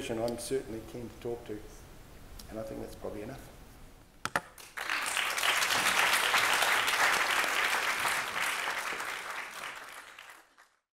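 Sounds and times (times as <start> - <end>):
audience applauding: 4.6 - 10.8.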